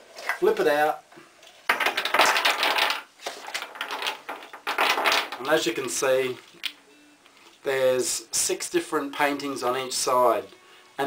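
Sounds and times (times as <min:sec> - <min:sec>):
cubes clattering onto wooden desk: 0:01.7 - 0:05.6.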